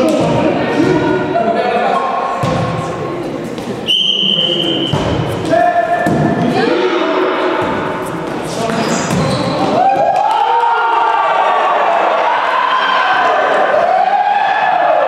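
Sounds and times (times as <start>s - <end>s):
volleyball being hit: 2.4s - 2.9s, 4.8s - 6.5s
players shouting calls: 3.8s - 15.0s
loud drawn-out shouts: 9.6s - 15.0s.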